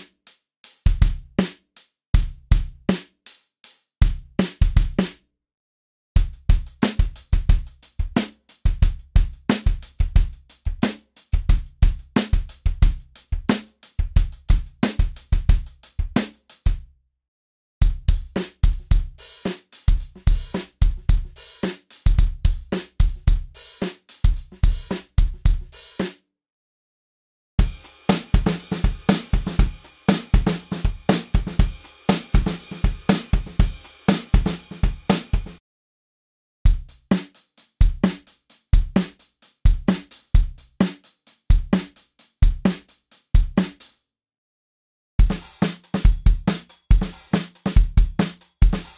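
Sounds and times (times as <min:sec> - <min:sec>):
acoustic drum loops: 0:06.2 - 0:16.7, 0:17.9 - 0:26.0, 0:27.6 - 0:35.6, 0:36.7 - 0:43.9, 0:45.2 - 0:48.9.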